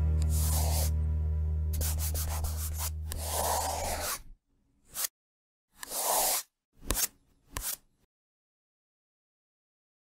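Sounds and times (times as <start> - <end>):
deep bass drone: 0.0 - 1.8.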